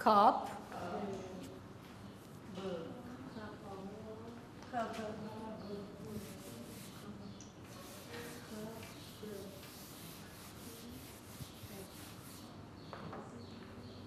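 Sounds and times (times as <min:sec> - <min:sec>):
pencils scratching on paper: 0:06.0 - 0:12.6.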